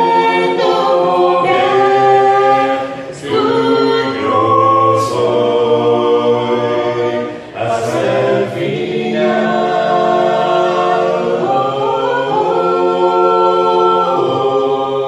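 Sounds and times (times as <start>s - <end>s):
group singing a hymn a cappella: 0.0s - 15.0s.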